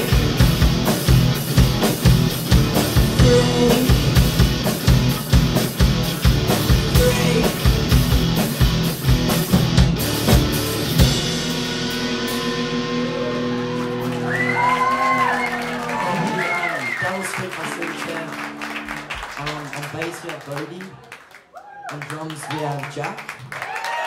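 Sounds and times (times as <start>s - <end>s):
drum kit beat: 0.0s - 15.2s
bass guitar: 0.0s - 16.6s
electric guitars: 0.0s - 19.8s.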